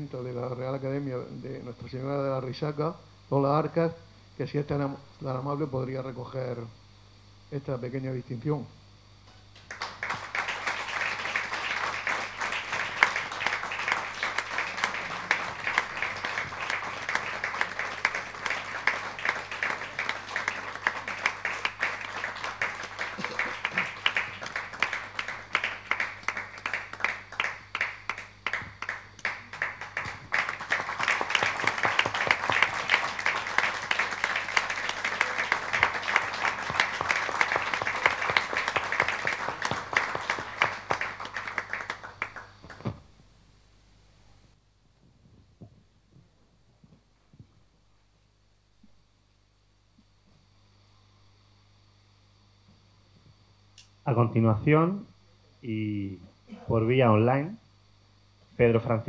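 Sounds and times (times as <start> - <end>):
audience applauding: 9.6 - 43.0.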